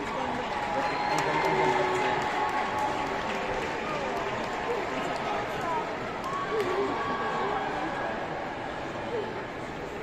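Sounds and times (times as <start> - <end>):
crowd clapping: 0.0 - 6.9.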